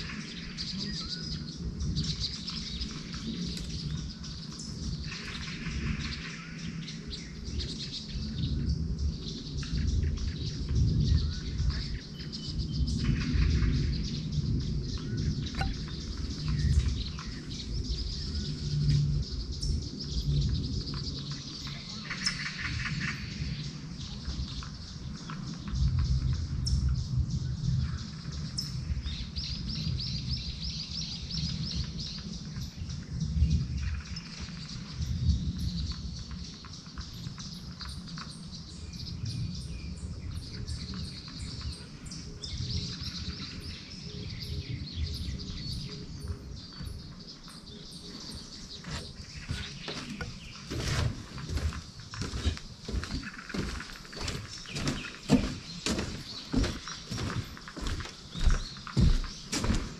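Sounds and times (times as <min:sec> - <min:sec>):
songbirds chirping and trilling: 0:00.0 - 0:59.9.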